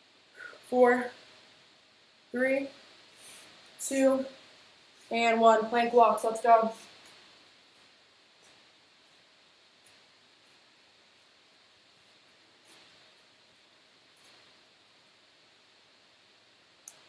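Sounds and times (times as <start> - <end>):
faint room hiss: 0.0 - 17.0.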